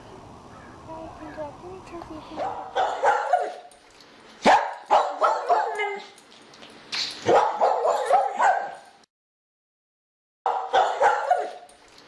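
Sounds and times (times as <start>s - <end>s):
dog barking: 2.4s - 3.7s, 4.4s - 6.1s, 7.2s - 8.9s, 10.5s - 11.7s.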